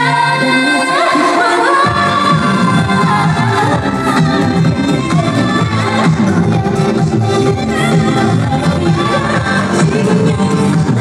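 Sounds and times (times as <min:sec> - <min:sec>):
pop backing track: 0:00.0 - 0:11.0
woman singing: 0:00.0 - 0:11.0.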